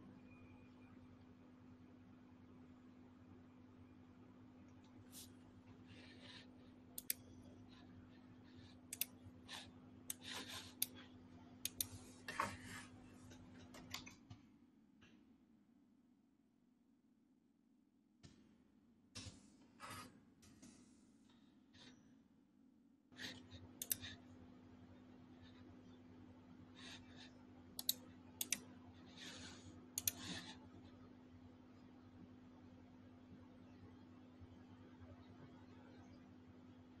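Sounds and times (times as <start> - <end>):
steady low hum: 0.0 - 15.6
low steady hum: 0.0 - 16.9, 18.2 - 37.0
rustling at a desk: 7.4 - 11.3, 11.9 - 14.5.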